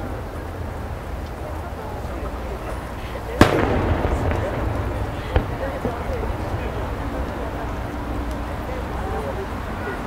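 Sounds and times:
crowd chatter: 0.0s - 10.0s
rolling echo: 1.9s - 10.0s
firework shell booming: 3.4s - 7.0s.

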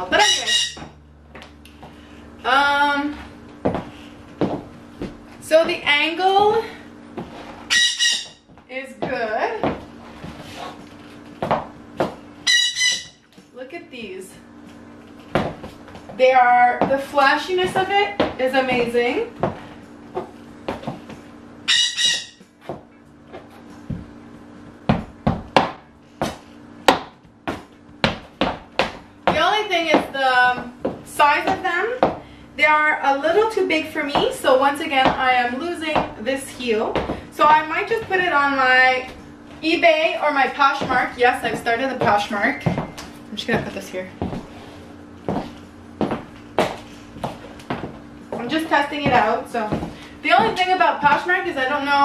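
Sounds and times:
faint steady hum: 0.0s - 52.0s
high heels clicking on wooden floor: 0.1s - 12.2s, 15.0s - 21.3s, 22.0s - 44.6s, 45.2s - 52.0s
brief high squeak: 7.7s - 8.4s, 12.5s - 13.2s, 21.7s - 22.4s.

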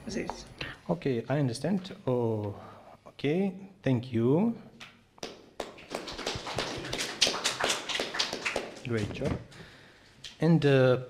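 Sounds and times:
audience applause: 5.7s - 9.0s.

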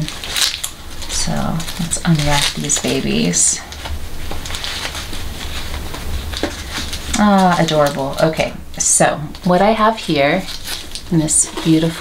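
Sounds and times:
fabric rustling: 0.0s - 12.0s
low steady hum: 0.0s - 12.0s.

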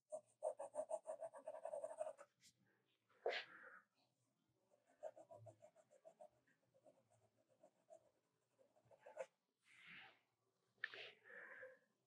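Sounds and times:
pencil strokes on paper: 0.1s - 2.6s, 4.7s - 9.7s.

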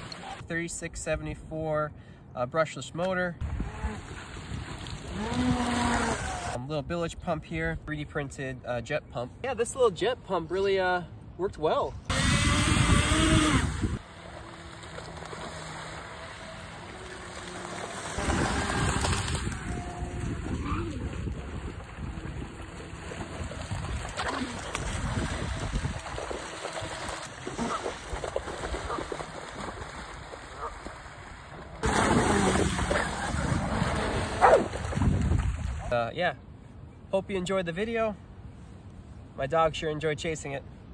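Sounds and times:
water splashing from dog running: 0.0s - 0.4s, 13.1s - 35.9s
boat motor and jet pump: 0.0s - 0.5s, 3.4s - 6.6s, 12.1s - 35.2s.

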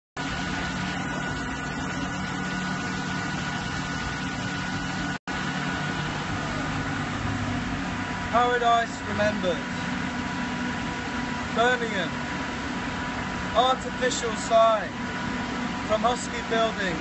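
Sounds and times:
machinery engine drone: 0.2s - 17.0s
thin steady whine: 0.2s - 17.0s.

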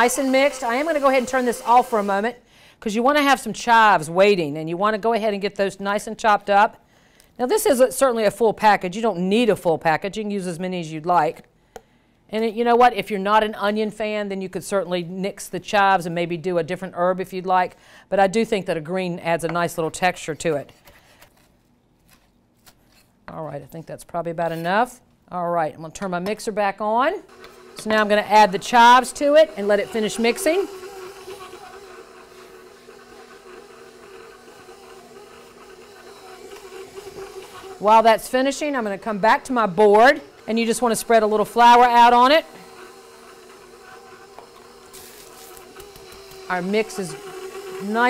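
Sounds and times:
stand mixer humming: 0.0s - 2.3s, 27.3s - 48.0s.

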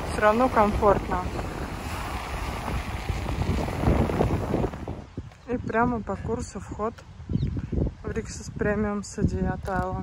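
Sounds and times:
surf breaking on beach: 0.0s - 5.1s
wind buffeting microphone: 0.0s - 10.0s.

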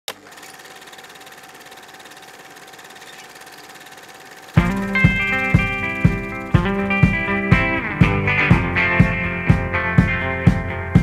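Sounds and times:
film projector whirring and clattering: 0.1s - 7.5s.

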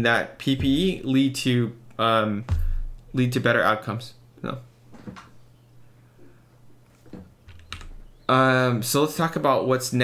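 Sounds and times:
faint low hum: 0.0s - 9.9s.

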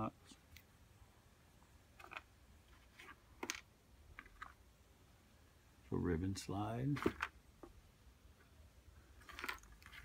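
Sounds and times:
soft rustles: 2.0s - 4.6s, 8.4s - 10.0s.

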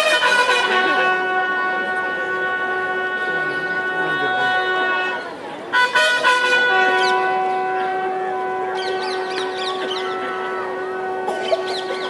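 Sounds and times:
bugle holding long note: 0.0s - 11.5s.

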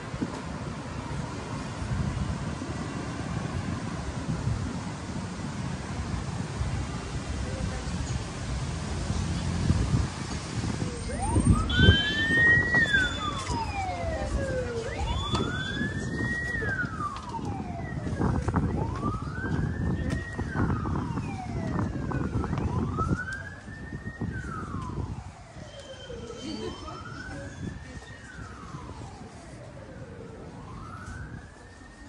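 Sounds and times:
siren wailing: 10.6s - 32.0s.

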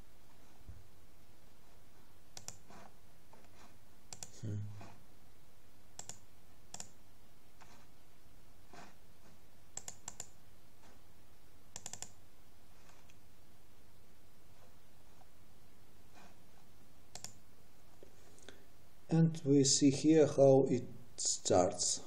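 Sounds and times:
computer mouse clicks: 2.3s - 4.4s, 6.0s - 7.0s, 9.7s - 11.0s, 11.7s - 12.2s, 12.8s - 13.2s, 17.1s - 17.4s.

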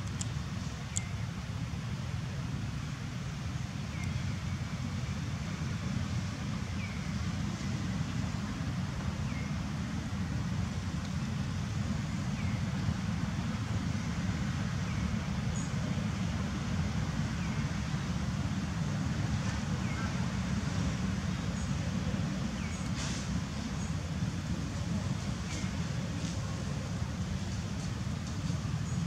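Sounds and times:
low outdoor rumble: 0.0s - 29.0s.

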